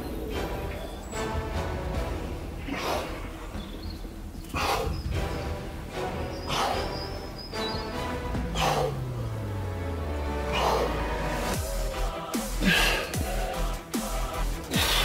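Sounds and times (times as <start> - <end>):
electronic music with bass line: 8.3 - 15.0.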